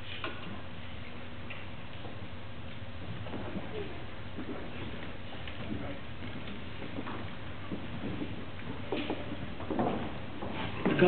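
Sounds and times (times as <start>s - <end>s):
faint footsteps and shuffles: 0.0s - 11.0s
low hum and hiss: 0.0s - 11.0s.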